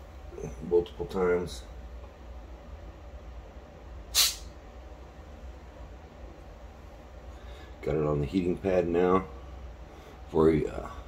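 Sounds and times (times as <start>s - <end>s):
gas hissing from jar: 4.1s - 4.5s.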